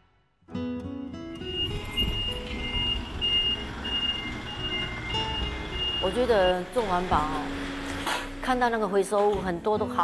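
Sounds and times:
music: 0.0s - 10.0s
truck reversing alarm beeping: 1.4s - 8.0s
truck engine running: 1.4s - 9.6s.

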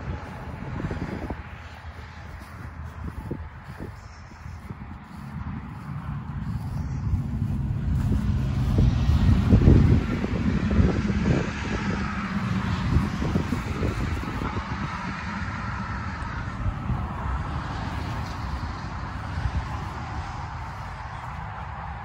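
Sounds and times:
vehicle passing on road: 0.0s - 22.0s
wind buffeting microphone: 0.0s - 22.0s.

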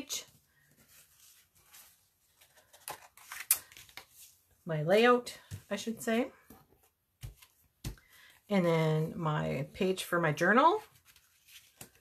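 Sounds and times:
paper handling: 10.8s - 12.0s.

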